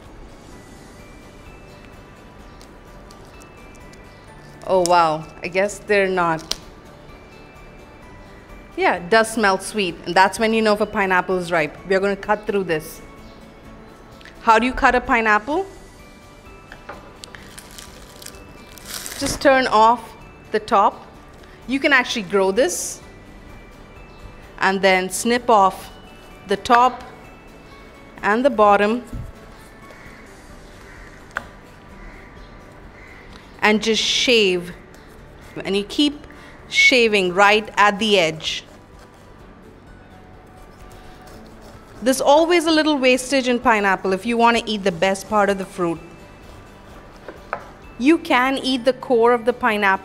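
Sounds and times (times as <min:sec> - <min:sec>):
soft background music: 0:00.0 - 0:50.0
leafy crown rustling crunch: 0:17.3 - 0:19.5.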